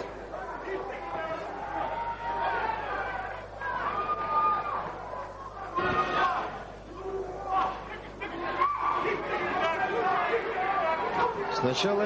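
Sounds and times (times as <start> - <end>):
crowd chatter in a hall: 0.0 - 12.0.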